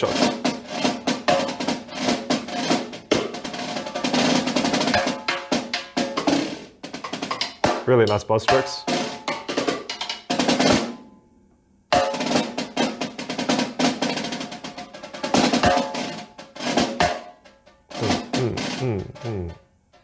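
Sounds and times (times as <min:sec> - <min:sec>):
snare drum played with sticks: 0:00.0 - 0:11.0, 0:11.9 - 0:19.6.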